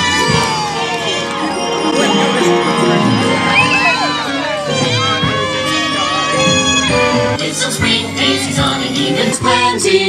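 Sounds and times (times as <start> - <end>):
parade music with singing: 0.0 - 10.0.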